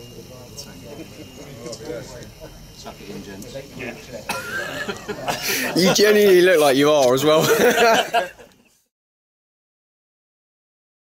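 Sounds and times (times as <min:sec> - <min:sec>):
men talking: 0:00.0 - 0:08.5
high drawn-out laugh: 0:04.3 - 0:06.4, 0:07.4 - 0:08.7.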